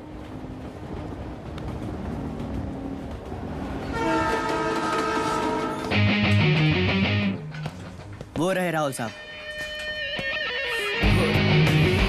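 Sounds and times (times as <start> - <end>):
train rumbling past: 0.0 - 6.5
train horn blast: 3.9 - 5.9.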